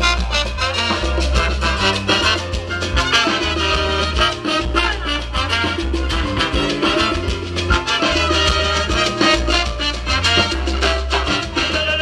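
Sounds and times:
deep repeating bass line: 0.0 - 12.0
drums and percussion: 0.0 - 12.0
keyboard: 0.0 - 12.0
trumpets and trombone: 0.0 - 12.0.

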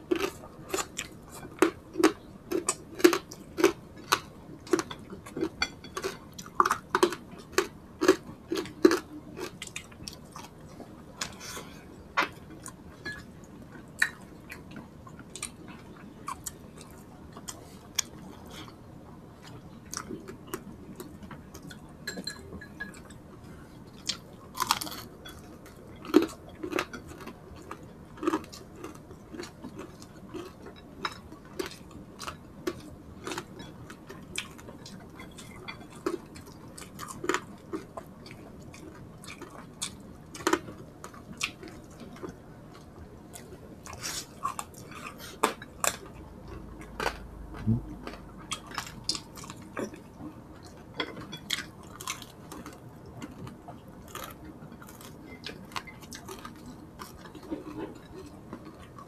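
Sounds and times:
chewing crispy pork: 0.0 - 59.0.

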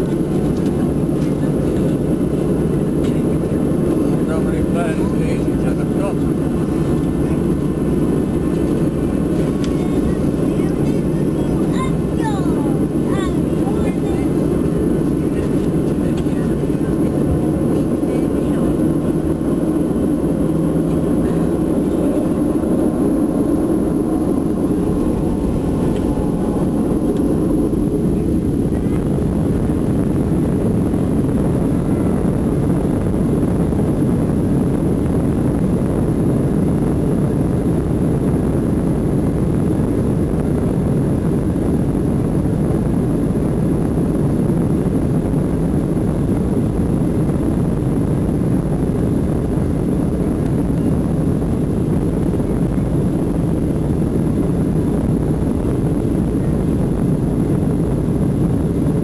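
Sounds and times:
jet engines rumbling in cabin: 0.0 - 59.0.

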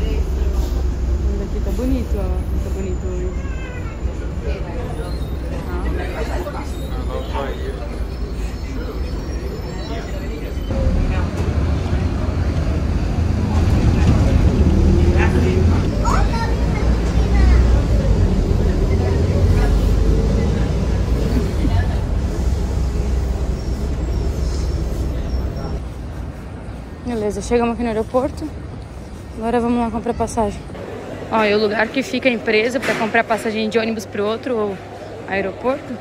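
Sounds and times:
bus engine and road rumble: 0.0 - 36.0
passengers' voices: 0.0 - 36.0.

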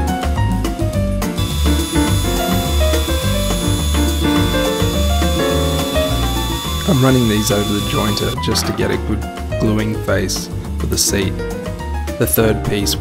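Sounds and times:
jointer whining: 1.4 - 8.4
piano music: 1.4 - 10.7.

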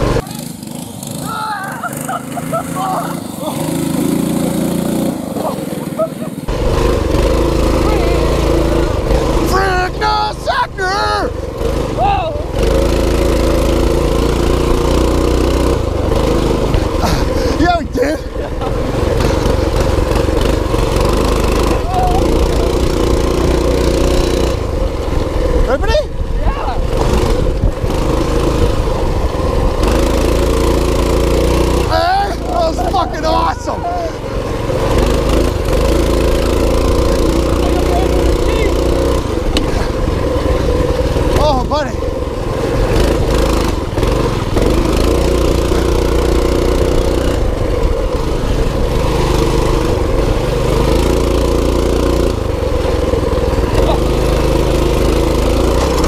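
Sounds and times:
mini bike engine revving: 0.0 - 56.0.

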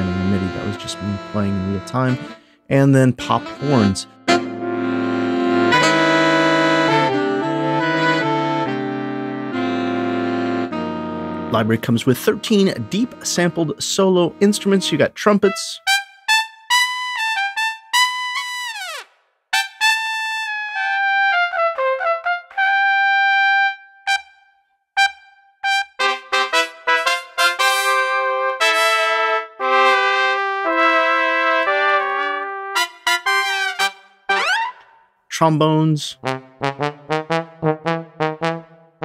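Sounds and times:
lead trumpet playing held notes: 0.0 - 16.0, 25.0 - 34.8, 36.2 - 38.8
trumpet section playing chords: 0.0 - 16.0, 25.0 - 39.0.

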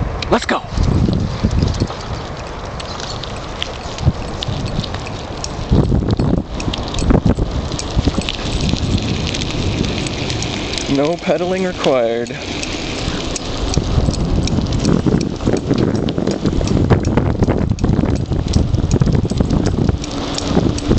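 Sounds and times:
bicycle rolling over asphalt: 0.7 - 20.9
light clicks and rattles: 0.8 - 20.9.

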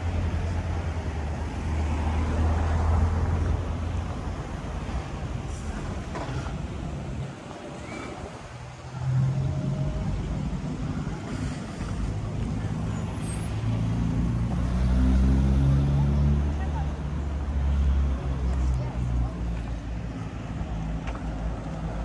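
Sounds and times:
car engines and tyres passing: 0.0 - 22.0.

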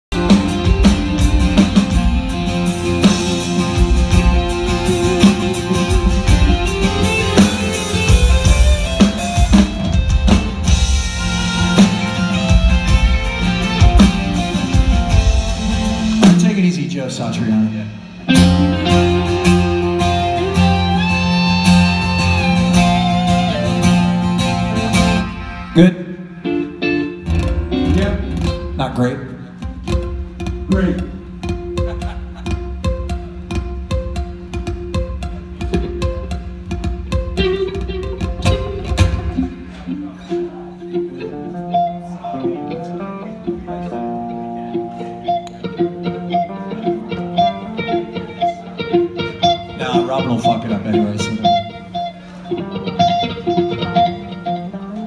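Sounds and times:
rock band playing: 0.0 - 55.0
loose guitar playing: 0.1 - 55.0.

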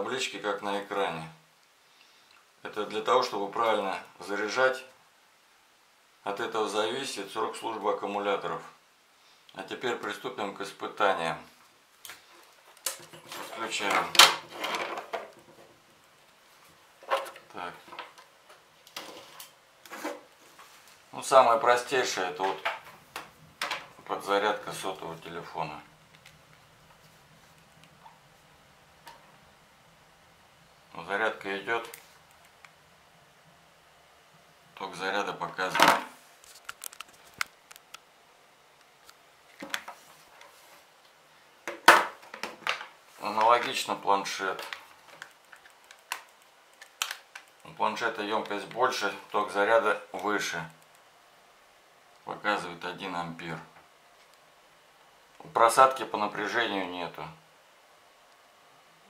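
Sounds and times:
soft rustle: 14.5 - 21.2, 39.0 - 41.2
small clicks and ticks: 44.6 - 47.7, 50.7 - 51.1.

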